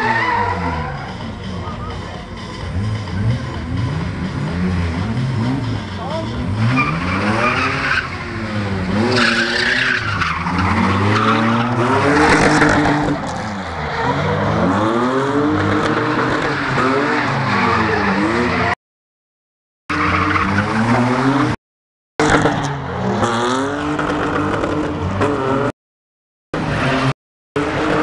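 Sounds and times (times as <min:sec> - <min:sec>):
tyres squealing on tarmac: 0:00.0 - 0:01.4, 0:06.0 - 0:08.2, 0:09.0 - 0:12.3
car engine revving: 0:00.0 - 0:18.8, 0:22.2 - 0:25.7.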